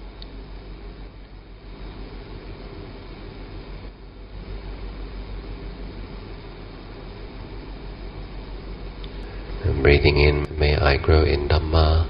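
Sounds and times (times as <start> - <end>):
even hiss: 0.0 - 12.0
low hum: 0.0 - 12.0.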